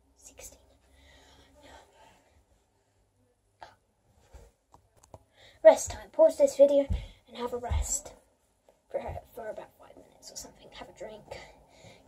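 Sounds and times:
girl whispering: 0.1 - 0.8.

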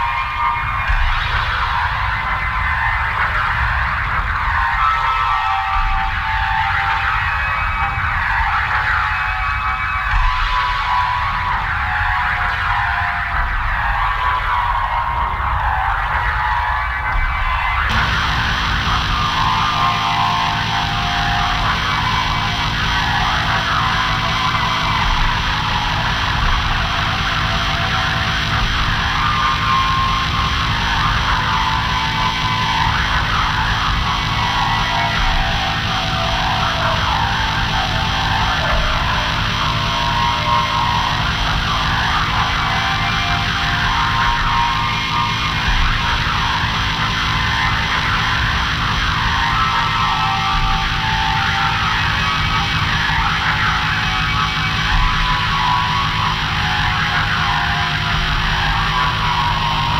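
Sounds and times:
industrial noise music drone: 0.0 - 59.9.

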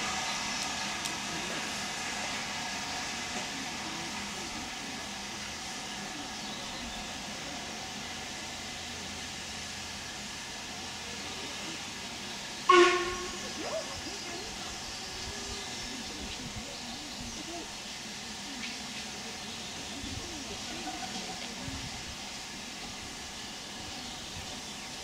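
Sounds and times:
hiss of escaping steam: 0.0 - 25.0
steam whistle toot: 12.6 - 13.5.

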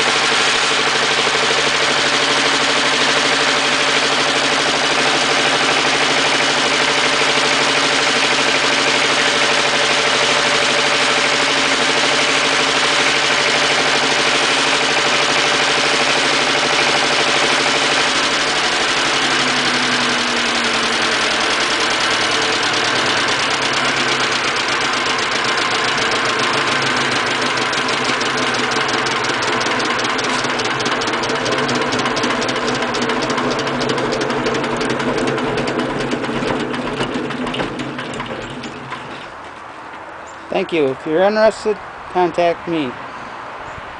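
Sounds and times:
diesel engine running steadily: 0.0 - 43.9.

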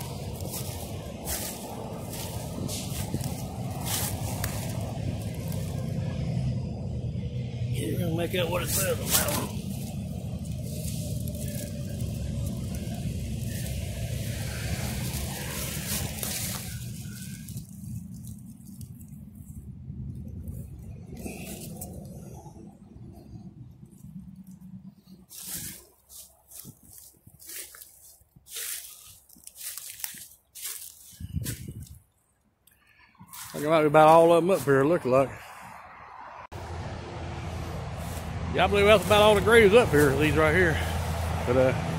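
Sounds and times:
footsteps in dry leaves: 0.0 - 6.4, 8.2 - 19.6, 25.0 - 32.1, 33.2 - 35.8, 36.6 - 41.9
traffic rumble: 0.0 - 41.9.

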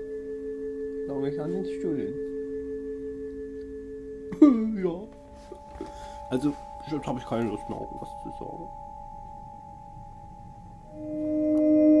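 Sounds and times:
steady two-pitch ringing tone: 0.0 - 12.0.

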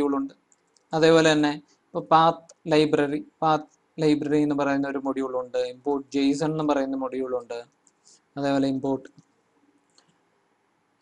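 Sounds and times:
man speaking: 0.0 - 0.3, 0.9 - 7.6, 8.4 - 9.1.

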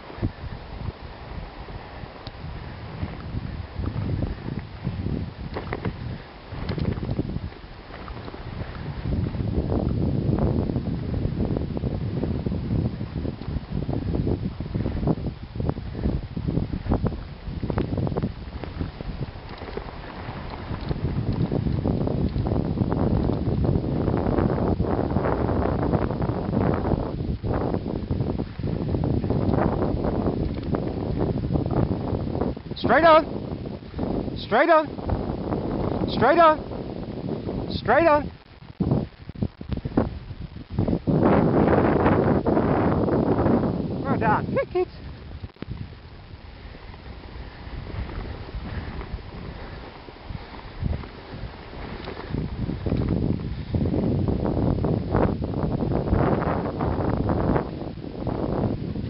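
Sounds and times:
sled running over snow: 0.0 - 59.0
wind buffeting microphone: 0.0 - 59.0.

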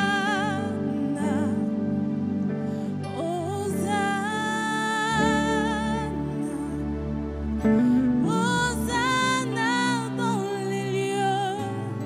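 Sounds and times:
soft instrumental accompaniment: 0.0 - 12.0
woman singing: 0.0 - 12.0.

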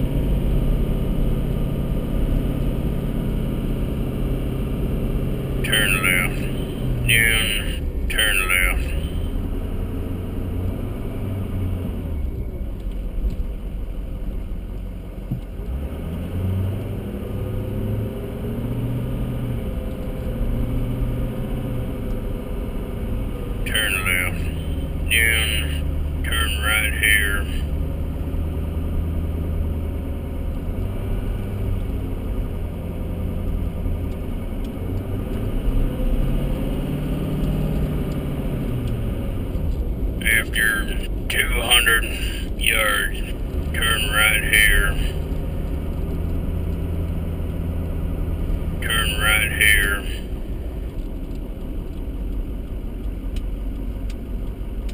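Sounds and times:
car engine: 0.0 - 54.9
road rumble inside car: 0.0 - 54.9
person speaking: 5.6 - 9.3, 23.6 - 27.6, 40.2 - 45.2, 48.8 - 50.4.

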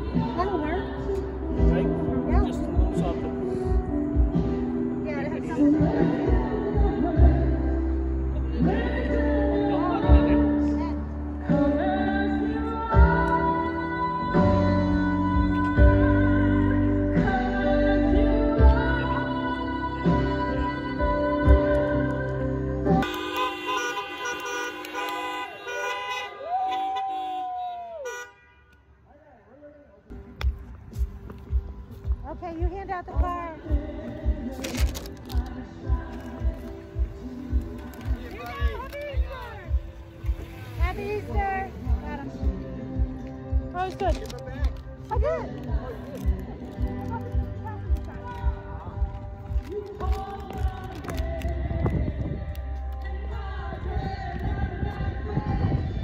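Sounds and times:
worship band playing: 23.0 - 26.4
car horns honking: 23.0 - 29.0.

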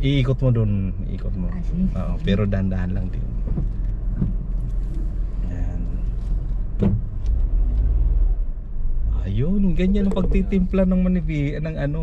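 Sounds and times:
car engine rumble: 0.0 - 12.0.

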